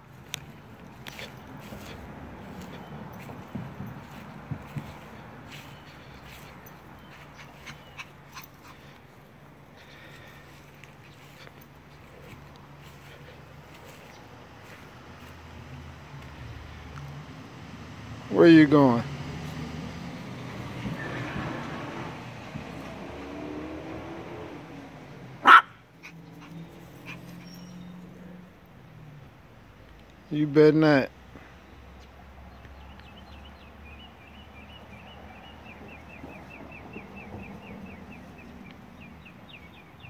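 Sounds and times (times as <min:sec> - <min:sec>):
dog barking: 0:25.4 - 0:25.8
small dog whimpering yips: 0:25.5 - 0:27.9.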